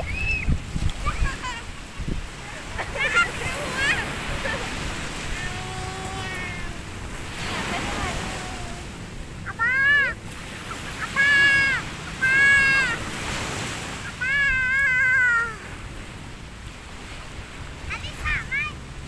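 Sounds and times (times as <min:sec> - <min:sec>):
child's high-pitched squeals: 0:00.0 - 0:01.6, 0:05.3 - 0:06.8, 0:09.5 - 0:10.2, 0:11.0 - 0:13.0, 0:14.0 - 0:15.8
surf washing: 0:00.0 - 0:19.0.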